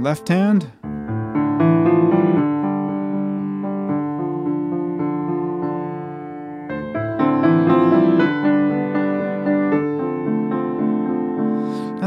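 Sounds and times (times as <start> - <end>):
low piano broken chords: 0.0 - 12.0.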